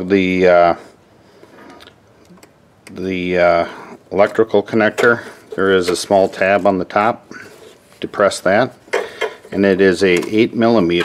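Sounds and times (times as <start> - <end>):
quiet background noise: 0.0 - 11.0.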